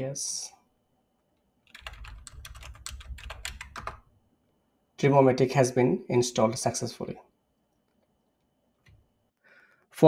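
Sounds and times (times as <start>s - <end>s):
computer keyboard typing: 1.6s - 4.0s.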